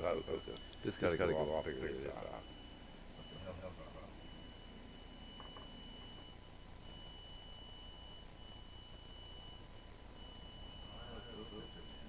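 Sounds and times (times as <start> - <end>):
high-pitched electronic whine: 0.0 - 12.0.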